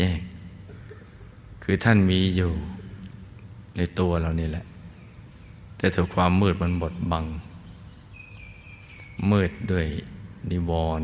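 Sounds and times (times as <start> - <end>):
man speaking calmly: 0.0 - 0.5, 1.6 - 4.9, 5.8 - 7.6, 9.1 - 11.0
faint low hum: 0.0 - 11.0.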